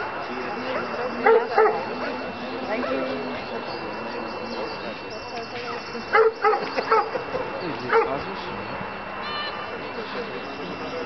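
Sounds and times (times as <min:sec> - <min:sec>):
dog barking: 0:01.2 - 0:01.9, 0:06.1 - 0:07.3, 0:07.9 - 0:08.2.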